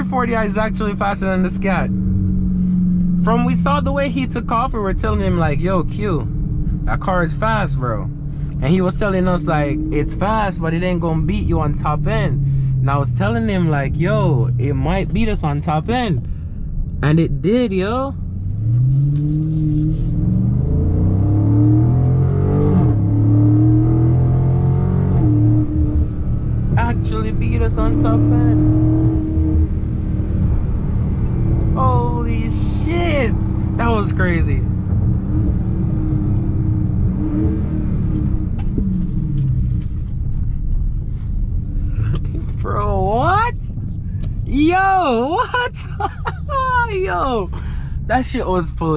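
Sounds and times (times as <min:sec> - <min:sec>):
car engine accelerating hard: 0:00.0 - 0:48.9
road noise: 0:00.0 - 0:48.9
short voice exclamation: 0:44.5 - 0:47.6.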